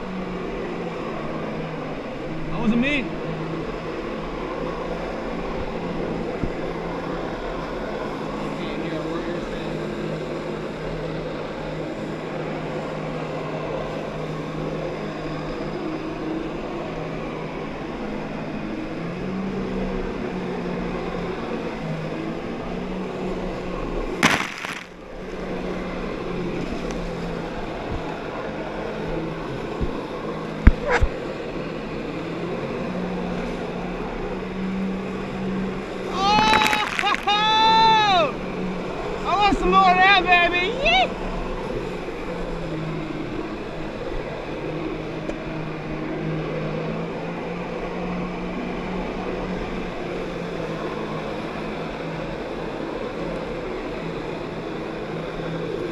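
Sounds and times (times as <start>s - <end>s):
jet ski engine running: 0.0s - 55.9s
water rushing: 24.2s - 25.0s, 36.0s - 38.3s
loud rush of noise: 24.2s - 25.1s, 36.0s - 38.4s.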